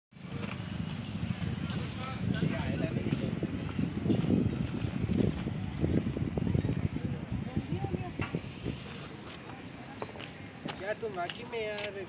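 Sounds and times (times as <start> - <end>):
wind buffeting microphone: 0.2 - 12.0
faint voices of people: 5.8 - 12.0.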